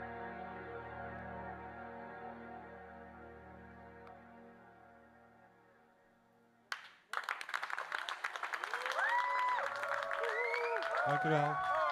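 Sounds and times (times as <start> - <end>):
audience applause: 6.7 - 11.9
audience cheering and calling: 8.5 - 11.9.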